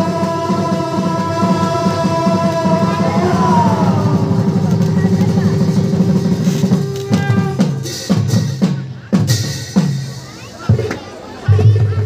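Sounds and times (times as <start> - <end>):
drums beating fast rhythm: 0.0 - 12.0.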